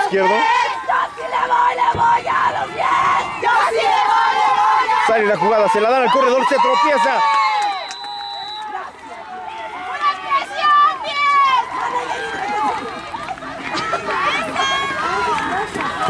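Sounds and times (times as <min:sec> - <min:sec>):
players shouting: 0:00.0 - 0:16.0
referee's whistle: 0:07.6 - 0:08.8.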